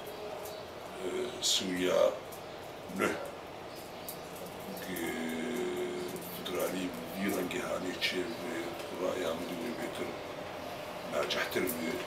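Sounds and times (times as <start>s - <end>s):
man speaking haltingly: 2.9s - 3.3s, 4.8s - 10.2s, 11.1s - 12.0s.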